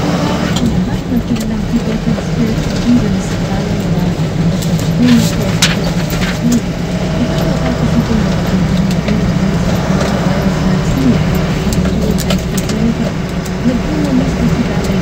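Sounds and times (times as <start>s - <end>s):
road noise: 0.0s - 15.0s
vehicle engine rumble: 0.0s - 15.0s.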